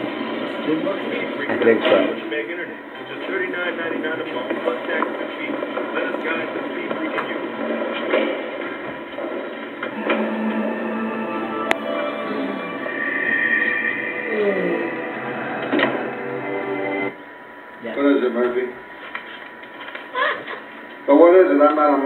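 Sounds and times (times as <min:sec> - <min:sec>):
film music from television speaker: 0:00.0 - 0:22.0
background voices: 0:09.9 - 0:17.2.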